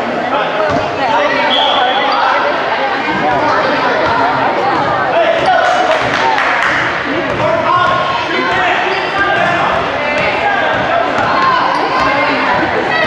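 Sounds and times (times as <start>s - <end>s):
people talking and calling: 0.0s - 13.0s
shoe squeak: 8.7s - 9.4s.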